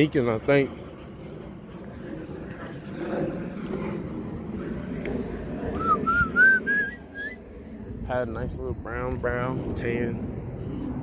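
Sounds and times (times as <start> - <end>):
man whistling: 5.7 - 7.4.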